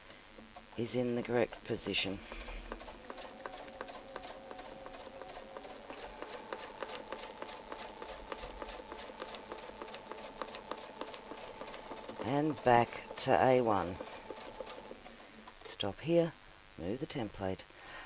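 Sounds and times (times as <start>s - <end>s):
sewing machine needle ticking: 1.5s - 15.6s
sewing machine motor whine: 1.6s - 15.5s.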